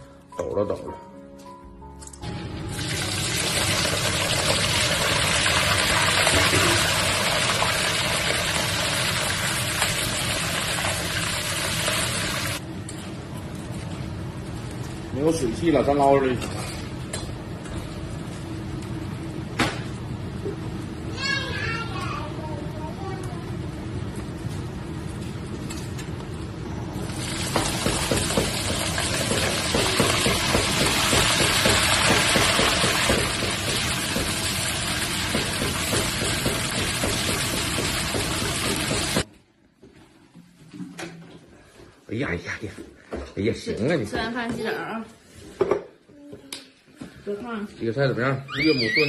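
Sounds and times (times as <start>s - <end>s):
shrimp sizzling in hot oil: 2.6s - 12.6s, 27.1s - 39.3s.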